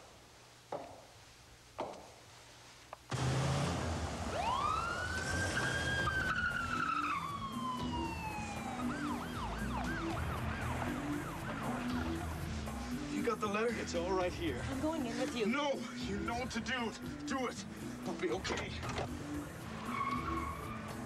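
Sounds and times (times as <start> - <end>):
ambulance siren wailing and yelping: 4.2 - 13.1, 18.9 - 21.0.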